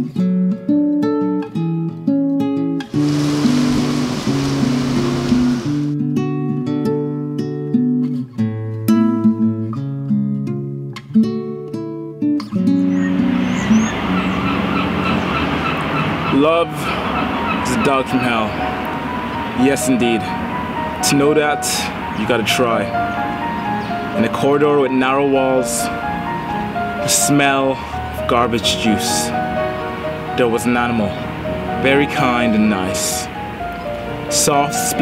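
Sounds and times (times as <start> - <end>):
acoustic guitar picking melody: 0.0 - 35.0
street noise: 2.8 - 5.9, 12.8 - 35.0
hiss: 2.9 - 5.9.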